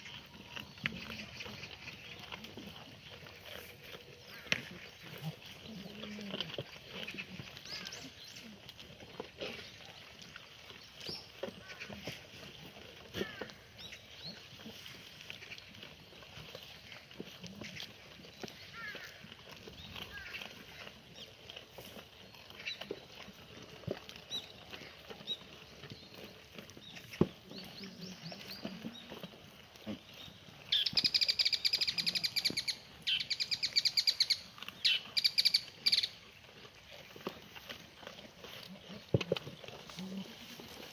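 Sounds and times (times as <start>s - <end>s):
goats rustling and crunching: 0.0s - 40.9s
goat bleating: 0.2s - 8.2s, 11.4s - 13.7s, 18.6s - 21.0s, 37.6s - 40.9s.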